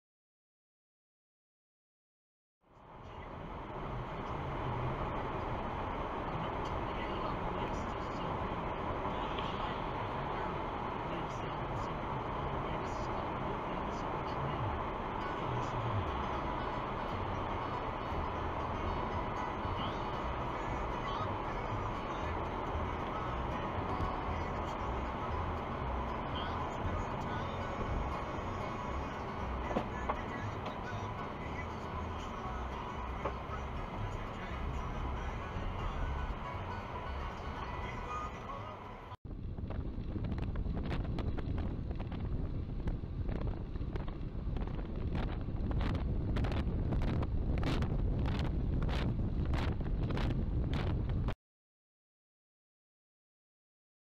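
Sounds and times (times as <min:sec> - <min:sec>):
car road and engine noise: 0:02.6 - 0:51.4
low rumble: 0:02.8 - 0:51.4.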